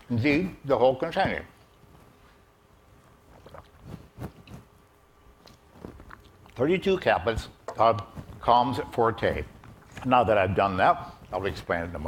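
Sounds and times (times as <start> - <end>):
man chewing tablets: 1.6 - 6.7, 9.4 - 10.1.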